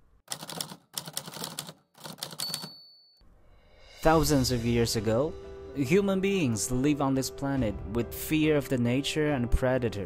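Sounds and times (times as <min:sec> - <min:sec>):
typewriter keys clacking: 0:00.3 - 0:02.8
typewriter carriage bell ring: 0:00.3 - 0:03.2.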